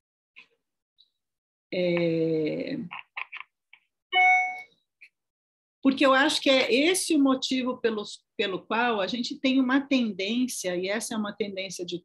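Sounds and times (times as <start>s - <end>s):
bell-like ding: 4.2s - 4.7s.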